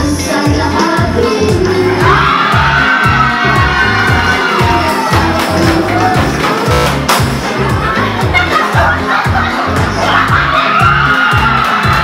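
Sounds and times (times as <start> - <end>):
music with thumping beat: 0.0 - 12.0
crowd cheering and shouting: 0.8 - 12.0
long drawn-out shout: 1.8 - 6.3, 10.0 - 12.0.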